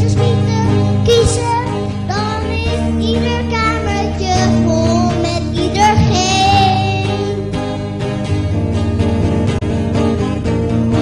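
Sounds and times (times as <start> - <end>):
held backing chords: 3.8 - 10.8
high voice singing: 5.8 - 7.4.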